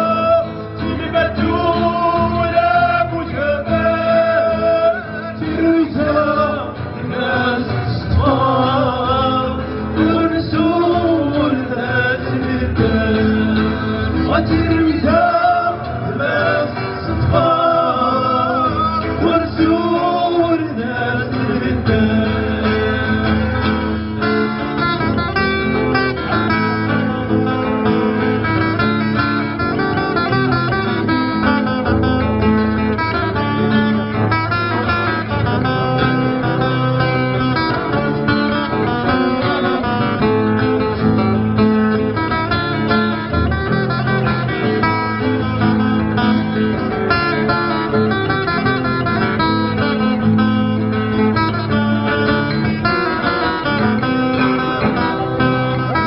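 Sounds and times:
acoustic guitars over loudspeakers: 0:00.0 - 0:56.0.

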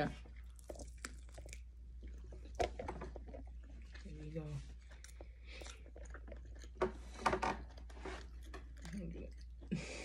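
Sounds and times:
person chewing crunchy food: 0:00.2 - 0:09.9.

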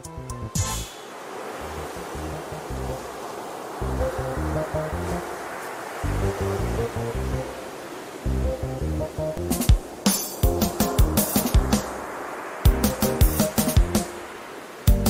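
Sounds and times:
background music with stepping bass: 0:00.0 - 0:00.9, 0:12.7 - 0:14.1
steady hiss: 0:00.8 - 0:15.0.

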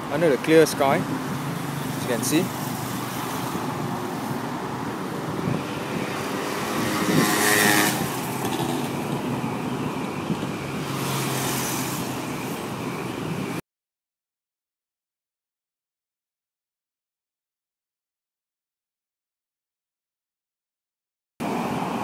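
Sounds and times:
vehicle passing: 0:00.0 - 0:13.5
traffic noise: 0:00.0 - 0:13.6, 0:21.4 - 0:22.0.

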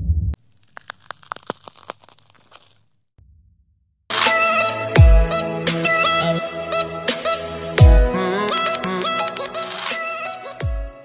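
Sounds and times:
deep low boom: 0:00.0 - 0:00.4.

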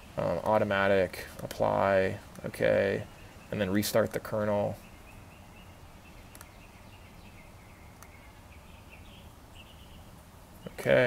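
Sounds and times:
soft sharp clicks: 0:06.3 - 0:06.6, 0:07.9 - 0:08.2.

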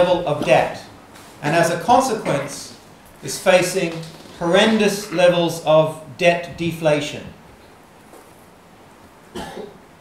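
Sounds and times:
man coughing: 0:09.3 - 0:09.8.

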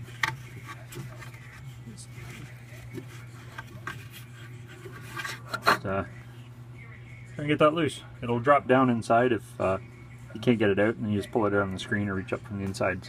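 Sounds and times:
fingers scraping lint off metal fan: 0:00.0 - 0:05.9
steady low hum: 0:00.0 - 0:13.0.

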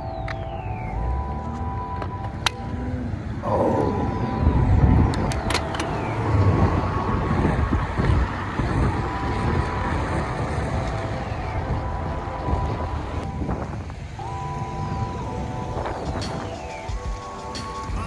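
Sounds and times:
bicycle road rumble: 0:00.0 - 0:18.0
wind buffeting microphone: 0:03.1 - 0:18.0.

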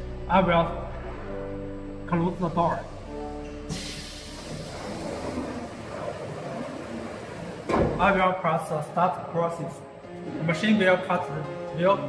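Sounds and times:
automatic door rushing noise: 0:03.7 - 0:08.0
door thump: 0:07.7 - 0:08.2.

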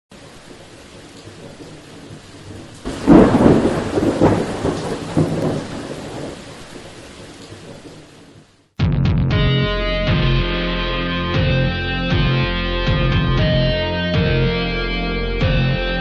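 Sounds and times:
thunder rumbling and cracking: 0:00.1 - 0:08.7
rain hissing: 0:00.1 - 0:08.8.

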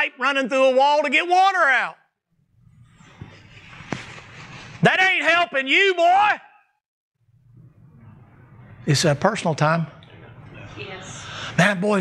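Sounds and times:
rustling and shuffling: 0:03.0 - 0:04.9.

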